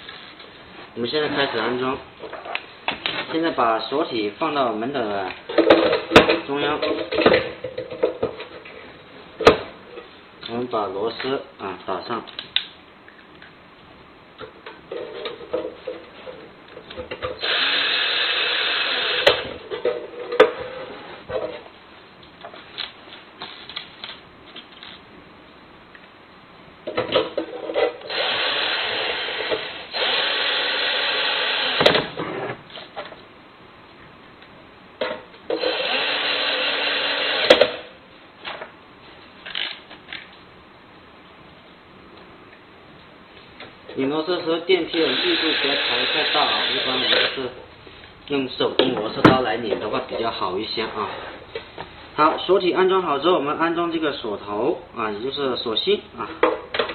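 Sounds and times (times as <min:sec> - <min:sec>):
electric screwdriver driving screws: 0:17.4 - 0:19.4, 0:28.1 - 0:31.9, 0:35.5 - 0:37.8, 0:44.9 - 0:47.4.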